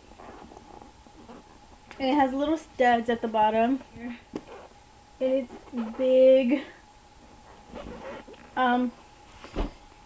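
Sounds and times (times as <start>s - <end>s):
leather bag rubbing and rustling: 7.5s - 8.3s.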